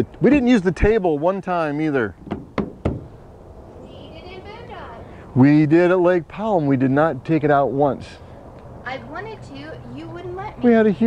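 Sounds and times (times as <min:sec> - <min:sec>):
hand tapping table panel: 0:02.2 - 0:03.1.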